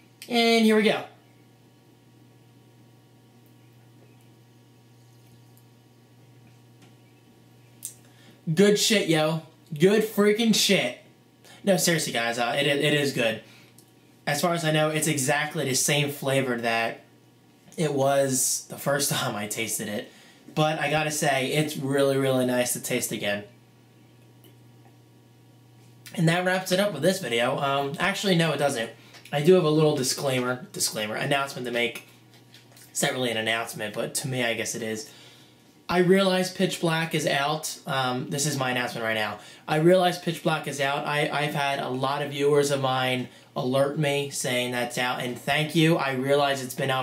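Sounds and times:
low room hum: 0.0 - 47.0.

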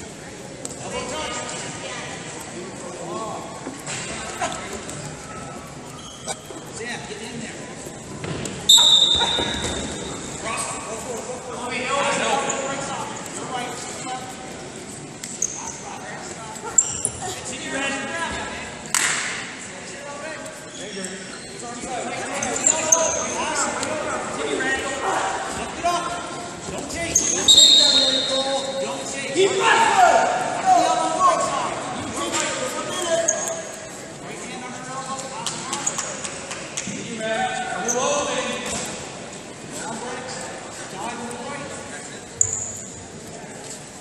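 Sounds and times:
voices calling out in hall: 0.0 - 44.0
short high squeaks: 5.4 - 6.8, 42.4 - 43.0.

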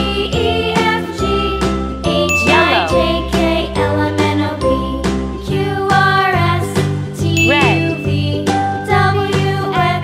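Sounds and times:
jingly tune with bell-like notes: 0.0 - 4.0, 7.2 - 9.1.

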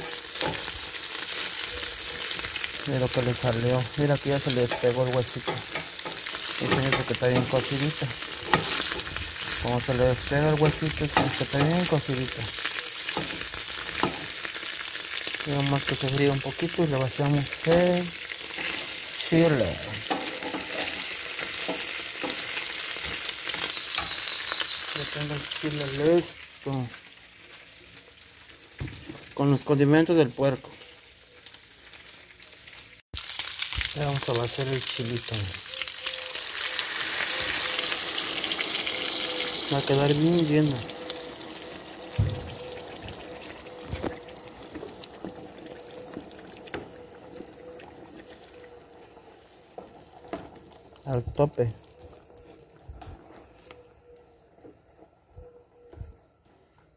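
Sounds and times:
bone pieces sizzling in fat: 0.0 - 53.5
spatula pushing in frying pan: 20.0 - 24.2.

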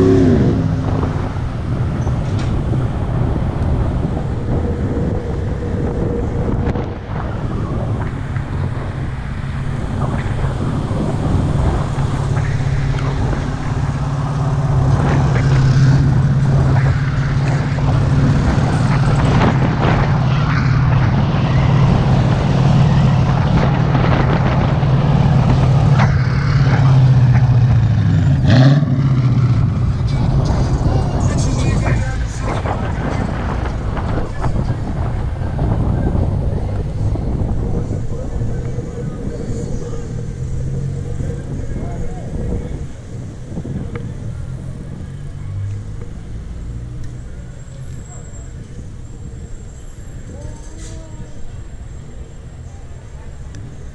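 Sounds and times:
rushing wind: 0.0 - 53.9.

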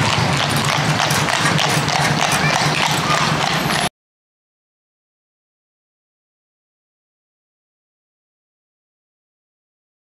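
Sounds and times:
horse hooves trotting on tarmac: 0.0 - 3.9
street noise: 0.0 - 3.9.

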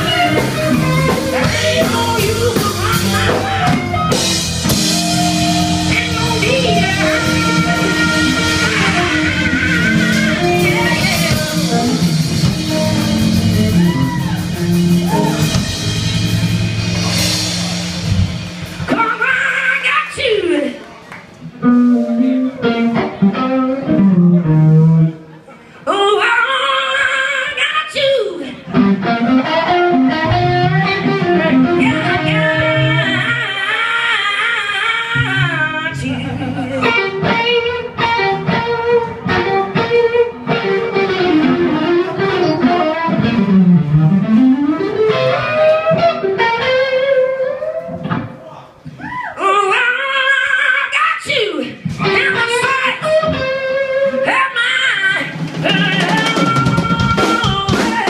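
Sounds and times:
electric guitar bending notes: 0.0 - 25.5, 28.6 - 49.7, 51.8 - 58.0
live band playing amplified music: 0.0 - 58.0.

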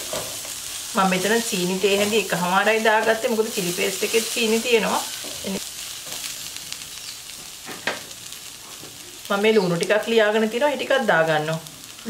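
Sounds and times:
mushrooms sizzling in a wok: 0.0 - 12.0.

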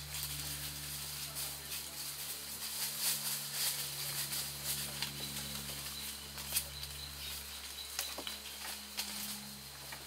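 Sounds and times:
leaves and twigs rustling: 0.0 - 10.0.

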